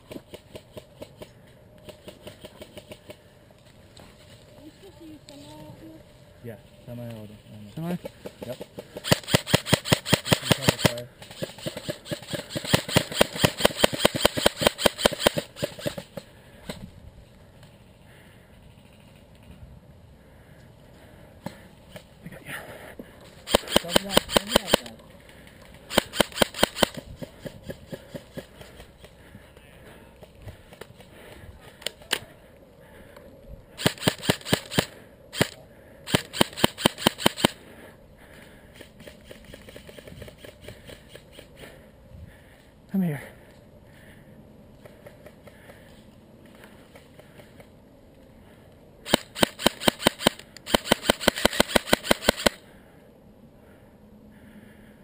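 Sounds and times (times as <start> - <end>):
airsoft rifle firing bursts: 9.0 - 16.2, 23.4 - 24.9, 25.9 - 28.9, 33.8 - 37.6, 49.1 - 52.6.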